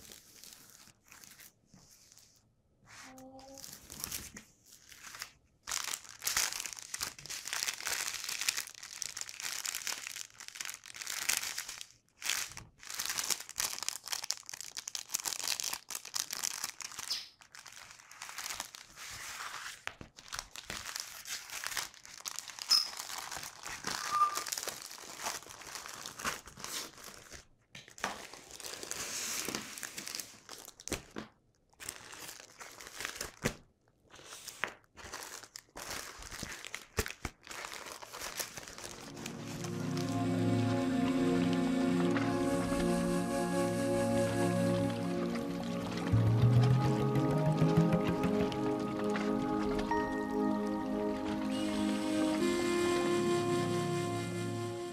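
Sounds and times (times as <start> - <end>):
plastic film crinkling: 0.0 - 2.4, 3.0 - 54.9.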